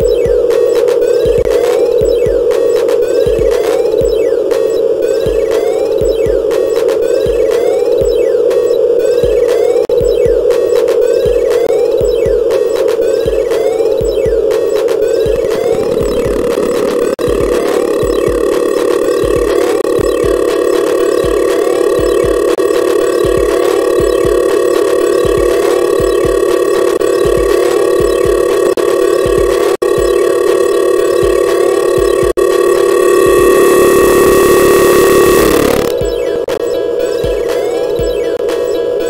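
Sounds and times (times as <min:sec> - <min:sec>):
small rising blips: 0:00.0 - 0:38.8
buzzing electronic drone: 0:00.0 - 0:39.0
low bass pulse: 0:15.2 - 0:36.5.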